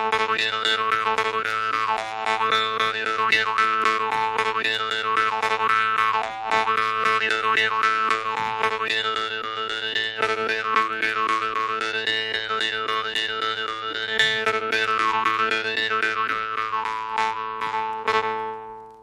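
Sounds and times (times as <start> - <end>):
jew's harp playing: 0.0 - 19.0.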